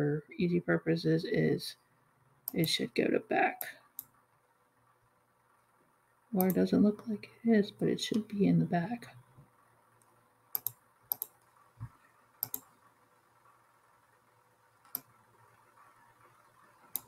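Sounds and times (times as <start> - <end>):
computer mouse clicks: 3.6 - 4.2, 6.4 - 6.6, 10.0 - 12.9, 14.8 - 17.0.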